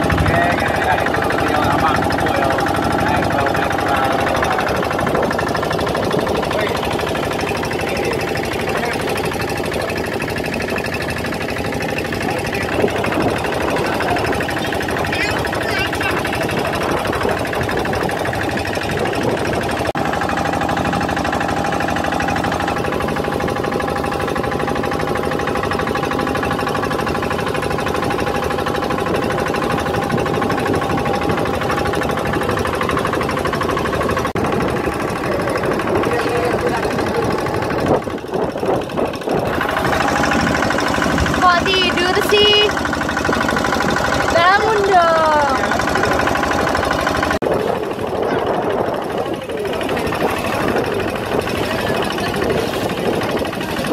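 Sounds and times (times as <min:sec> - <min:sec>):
boat diesel engine running: 0:00.0 - 0:53.9.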